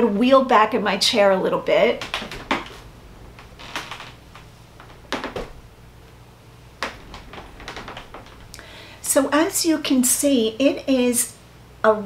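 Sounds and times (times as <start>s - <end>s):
soft clicks and rustles: 1.7s - 9.6s.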